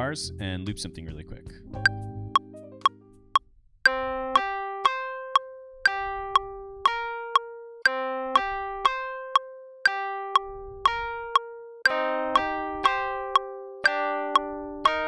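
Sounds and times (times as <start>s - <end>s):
metronome clicks: 3.9s - 15.0s
electric piano notes: 10.4s - 15.0s.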